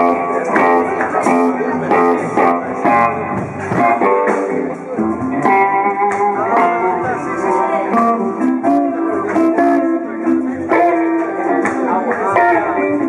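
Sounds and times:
bass guitar: 0.0 - 13.0
electric guitar playing blues: 0.0 - 13.0.

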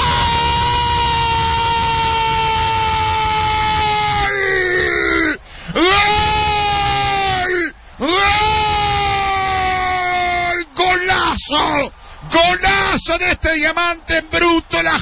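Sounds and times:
commentator's long goal shout: 0.0 - 15.0
quick breath: 5.4 - 5.8, 7.8 - 8.0, 12.0 - 12.3.

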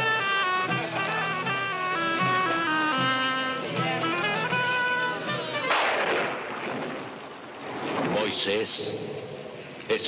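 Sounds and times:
music: 0.0 - 6.0
loud crash: 5.6 - 7.0.

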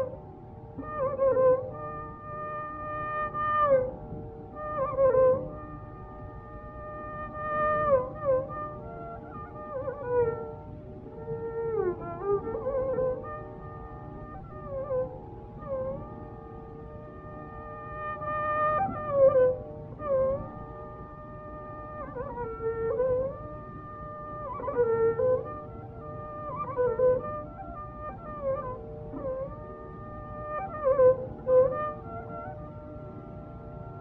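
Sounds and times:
tanpura drone: 0.0 - 34.0
tape hiss: 0.0 - 34.0.

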